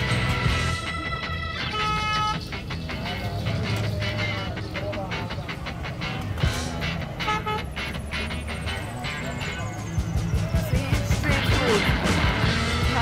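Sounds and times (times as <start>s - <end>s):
traffic: 0.0s - 13.0s
voices: 0.0s - 13.0s
vehicle horn honking: 1.6s - 2.5s, 7.2s - 7.8s.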